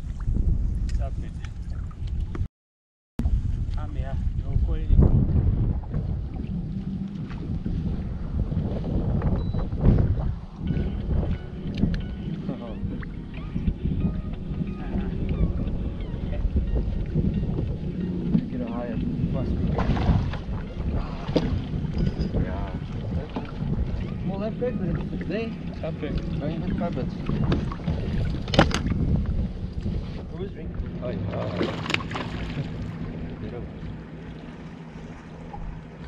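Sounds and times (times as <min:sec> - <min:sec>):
water lapping against hull: 0:00.0 - 0:02.5, 0:03.2 - 0:36.0
wind buffeting microphone: 0:00.0 - 0:02.5, 0:03.2 - 0:36.0.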